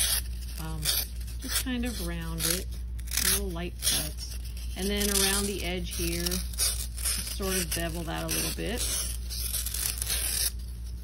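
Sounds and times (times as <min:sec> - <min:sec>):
box cutter slicing floral foam: 0:00.0 - 0:10.6.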